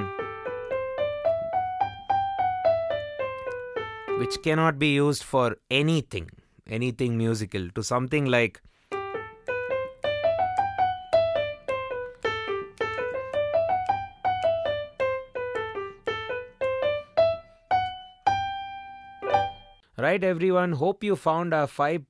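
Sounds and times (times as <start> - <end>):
digital piano playing scales: 0.0 - 4.9, 8.9 - 19.9
repeated low piano note: 9.0 - 19.8.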